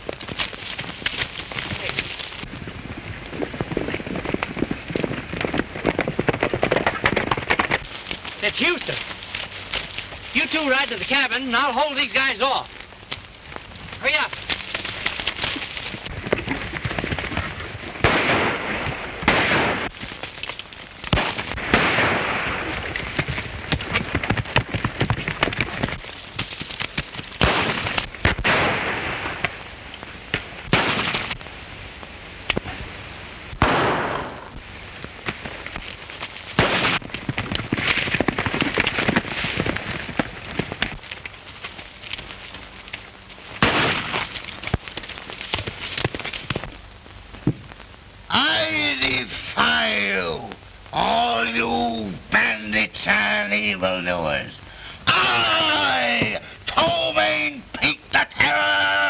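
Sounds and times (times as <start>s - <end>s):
crackling hiss: 0.0s - 59.0s.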